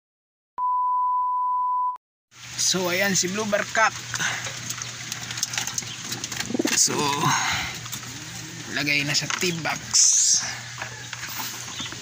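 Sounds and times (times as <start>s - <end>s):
small clicks and rustles: 4.0s - 6.9s
pigeons cooing: 4.4s - 12.0s.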